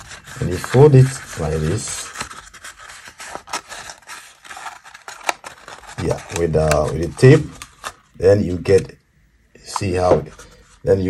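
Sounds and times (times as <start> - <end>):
paper rustling and crinkling: 0.0 - 8.1.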